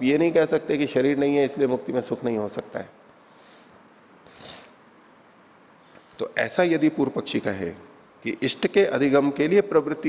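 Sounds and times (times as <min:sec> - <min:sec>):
faint room hiss: 0:00.0 - 0:10.0
man breathing in through nose: 0:03.3 - 0:04.8.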